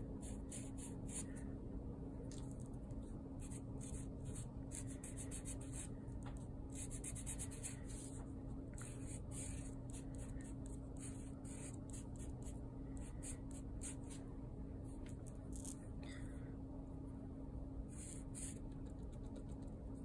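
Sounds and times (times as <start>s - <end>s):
marker drawing on paper: 0.2s - 1.2s, 3.4s - 5.9s, 6.7s - 8.2s, 8.8s - 14.2s, 17.9s - 19.4s.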